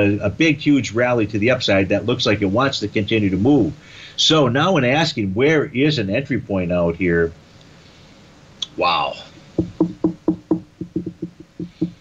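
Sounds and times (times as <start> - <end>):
short knocks: 9.5 - 12.0.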